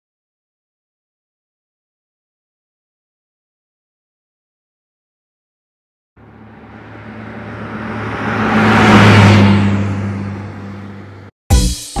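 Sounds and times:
vehicle rushing past: 6.2s - 11.3s.

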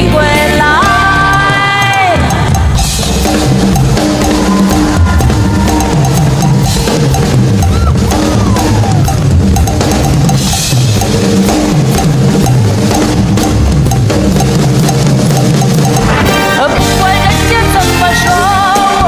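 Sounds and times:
drum kit beat: 0.0s - 19.0s
rhythmic bass line: 0.0s - 19.0s.

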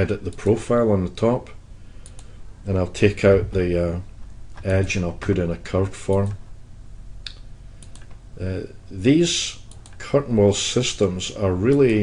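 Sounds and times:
computer mouse clicks: 2.0s - 2.3s, 7.3s - 8.2s, 9.6s - 10.0s.

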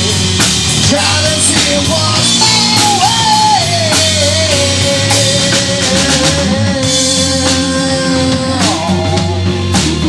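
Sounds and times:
drum hits on a steady beat: 0.0s - 10.0s
live rock band playing: 0.0s - 10.0s.

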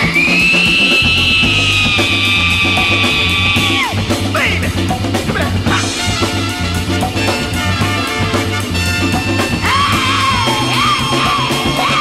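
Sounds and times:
bass line: 0.0s - 12.0s
funk band playing: 0.0s - 12.0s.

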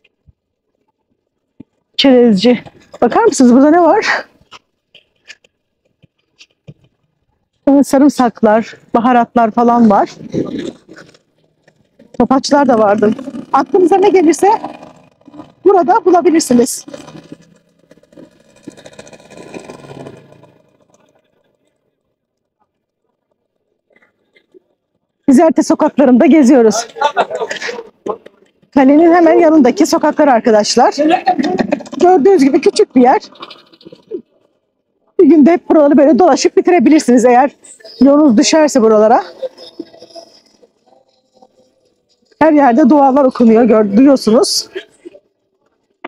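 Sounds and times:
quiet street noise: 0.0s - 46.0s
motor scooter engine running: 9.8s - 22.1s
distant prayer over loudspeaker: 36.9s - 45.3s.

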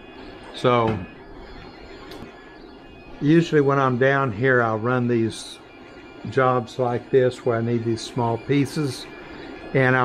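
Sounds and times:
printers running hum: 0.0s - 10.0s.

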